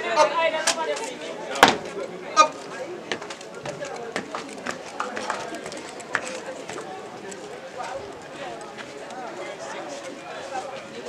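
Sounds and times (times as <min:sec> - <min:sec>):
crowd chatter: 0:00.0 - 0:11.0
boots stamping in marching drill: 0:03.1 - 0:06.9.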